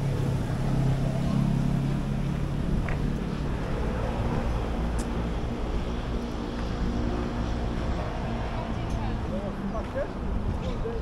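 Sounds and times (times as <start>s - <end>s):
faint voices of passers-by: 0.0s - 11.0s
low hum of city traffic: 0.0s - 11.0s.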